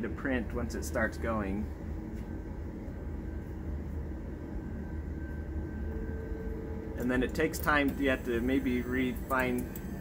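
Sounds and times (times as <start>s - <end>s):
low machine hum: 0.0s - 10.0s
stepper motors whining: 4.7s - 10.0s.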